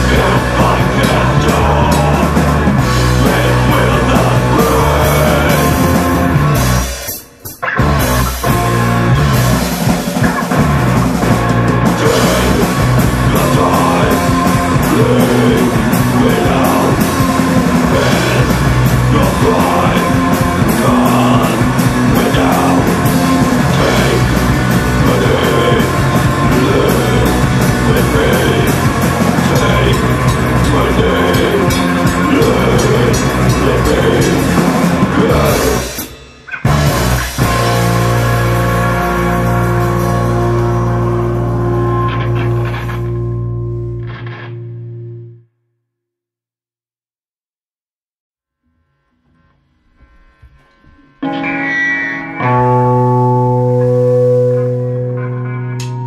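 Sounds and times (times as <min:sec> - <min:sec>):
hardcore punk band playing: 0:00.0 - 0:45.3, 0:50.0 - 0:56.0.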